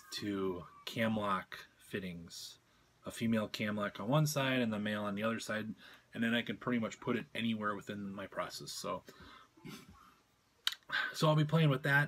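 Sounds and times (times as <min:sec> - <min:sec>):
man speaking: 0:00.0 - 0:09.1, 0:10.7 - 0:12.0
soft breath: 0:09.1 - 0:10.3
mouth click: 0:10.6 - 0:10.9.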